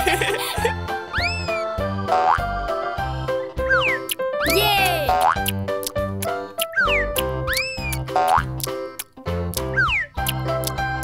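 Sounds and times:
bouncy cartoon music: 0.0s - 11.0s.

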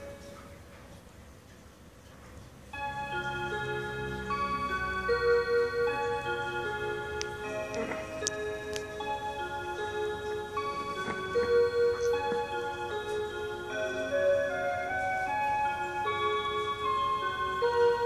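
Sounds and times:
clock electronic melody: 0.0s - 0.6s, 2.7s - 18.0s.

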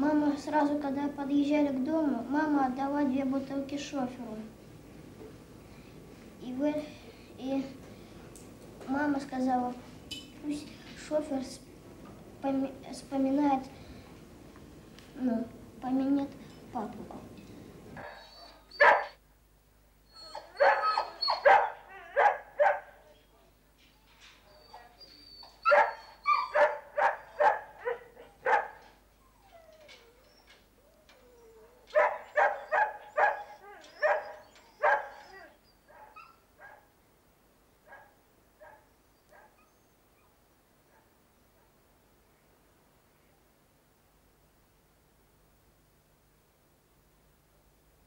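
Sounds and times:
caged dogs barking: 18.0s - 19.2s, 20.2s - 23.2s, 24.3s - 37.0s, 37.8s - 40.3s, 40.9s - 41.8s.

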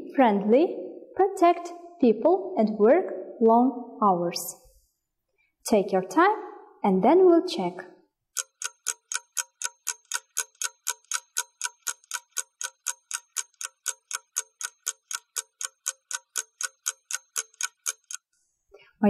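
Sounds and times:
person talking: 0.0s - 4.6s, 5.7s - 7.8s
clock ticking rapidly: 8.3s - 18.3s.

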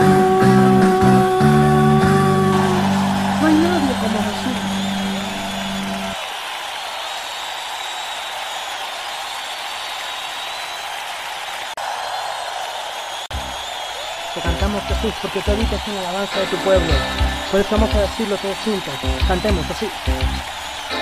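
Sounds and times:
crowd applauding and cheering: 0.0s - 21.0s.

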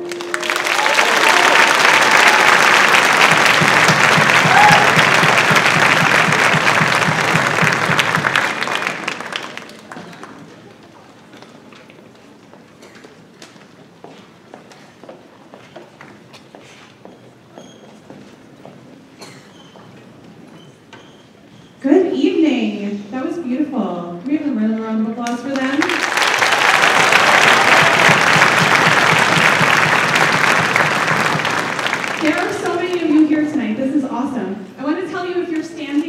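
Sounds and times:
audience applause: 0.0s - 11.4s, 25.5s - 33.2s
low murmur of room noise: 6.4s - 36.0s
small knocks and shuffles: 11.4s - 18.9s.

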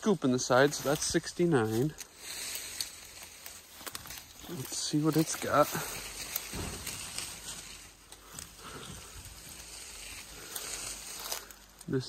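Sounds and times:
leaves and branches rustling: 0.0s - 12.0s
twigs snapping: 0.8s - 12.0s
low thump: 6.4s - 7.4s.

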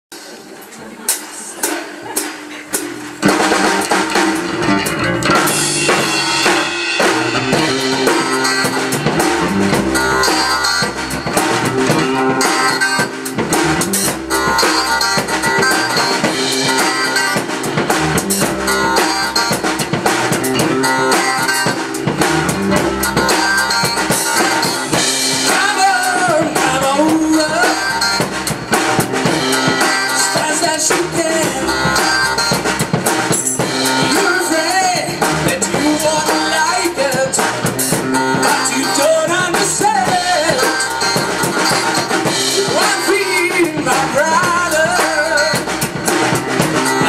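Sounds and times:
funk band playing: 0.1s - 47.0s
sharp drum hits: 2.0s - 27.0s.

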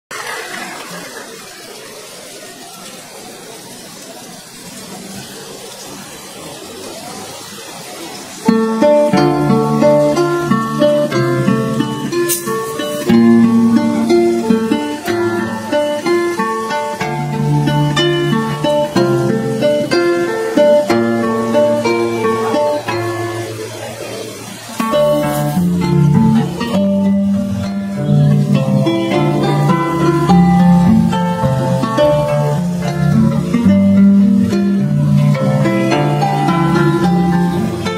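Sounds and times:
harps playing: 8.5s - 24.0s, 24.7s - 37.9s.

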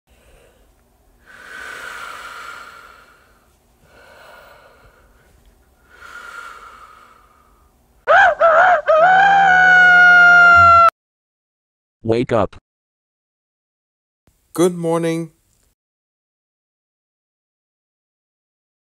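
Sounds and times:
person snoring: 1.2s - 5.0s, 5.9s - 7.5s.

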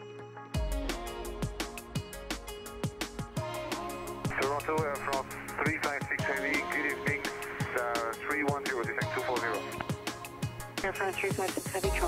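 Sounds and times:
song with drum beat and vocals: 0.6s - 12.0s.

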